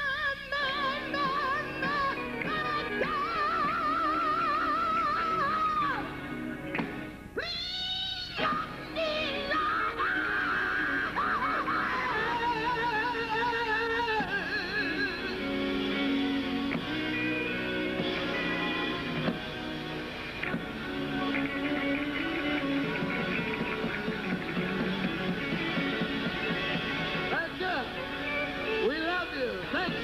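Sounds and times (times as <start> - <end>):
person singing with vibrato: 0.0 - 6.3, 7.4 - 19.2
drums: 0.0 - 30.0
electric guitar: 0.0 - 30.0.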